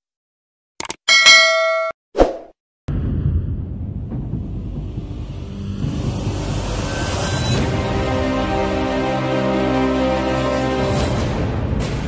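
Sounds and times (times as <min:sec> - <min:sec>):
bright bell ding: 0:01.1 - 0:02.0
steady low rumble: 0:02.9 - 0:06.8.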